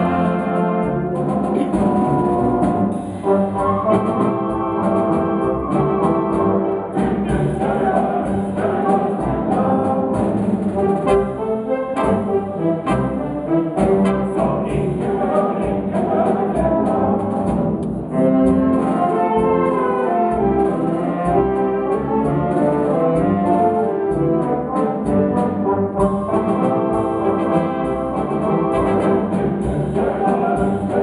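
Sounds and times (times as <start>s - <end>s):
wind band playing a waltz: 0.0s - 31.0s.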